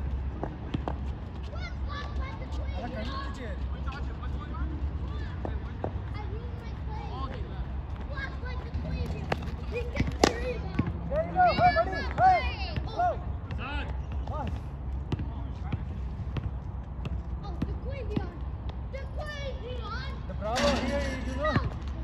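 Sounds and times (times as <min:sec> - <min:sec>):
players shouting: 0:09.8 - 0:13.7.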